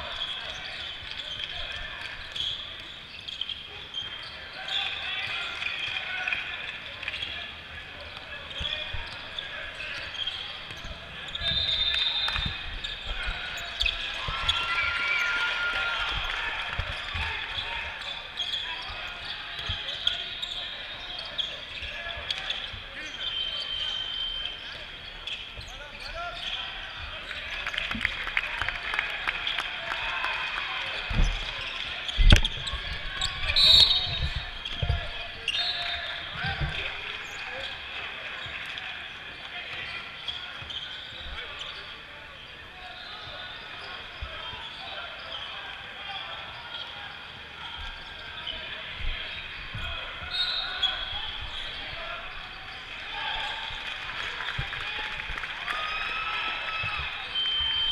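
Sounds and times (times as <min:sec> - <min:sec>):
sneakers squeaking: 0:00.0 - 0:28.2, 0:29.2 - 0:57.9.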